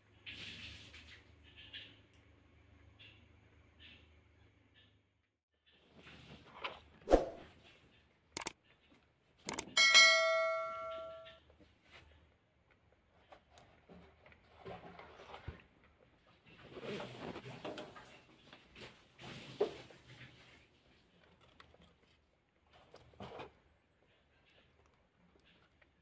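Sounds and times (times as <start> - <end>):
struck metal object ringing: 9.8 - 11.3.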